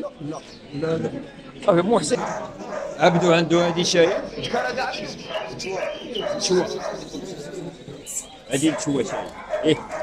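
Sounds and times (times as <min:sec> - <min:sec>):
people's voices: 0:00.0 - 0:10.0
dog barking and yelping: 0:02.1 - 0:04.5, 0:05.2 - 0:07.2, 0:08.6 - 0:10.0.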